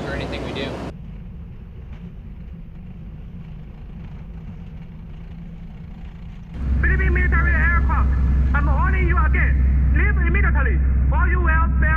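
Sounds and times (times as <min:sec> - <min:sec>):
man speaking over radio: 0:00.0 - 0:00.8, 0:06.6 - 0:11.9
aircraft cabin engine drone: 0:00.0 - 0:11.9
radio transmission hum: 0:06.5 - 0:11.9.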